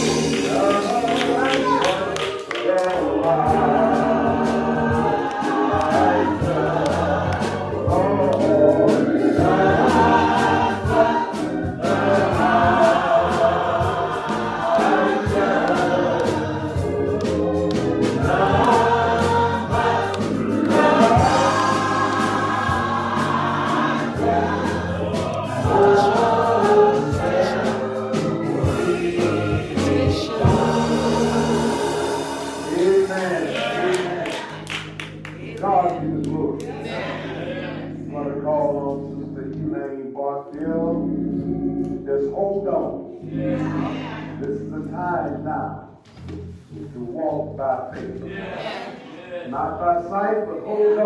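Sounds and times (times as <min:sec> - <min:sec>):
instrumental accompaniment: 0:00.0 - 0:48.8
choir singing gospel: 0:00.0 - 0:51.0.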